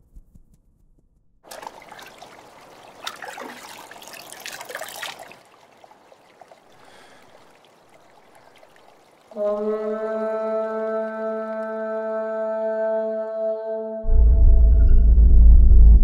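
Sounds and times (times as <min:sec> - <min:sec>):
water trickling and splashing: 0:01.5 - 0:12.1.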